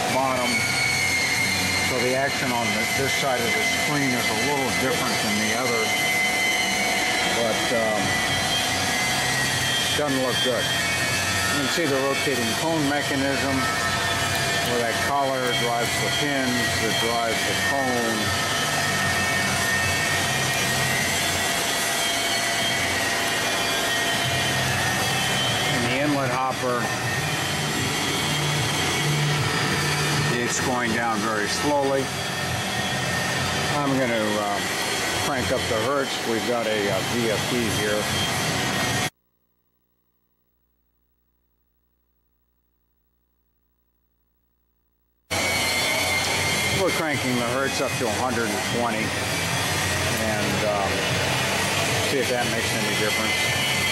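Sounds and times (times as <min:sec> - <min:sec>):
screw press mechanical drone: 0:00.0 - 0:36.0
high electrical tones: 0:00.0 - 0:39.1.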